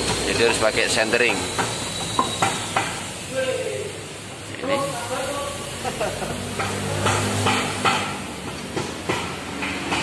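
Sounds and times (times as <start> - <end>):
wheel knocking onto hub: 0.0 - 3.1
steady hiss: 0.0 - 6.6.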